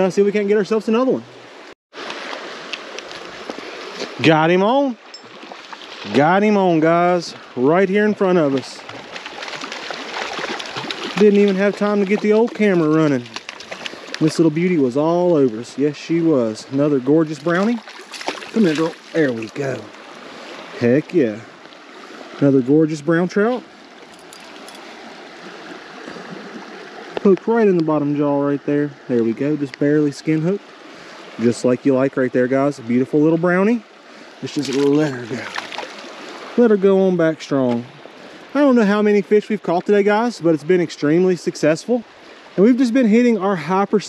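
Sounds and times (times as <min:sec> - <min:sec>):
creek water rushing: 0:00.0 - 0:44.0.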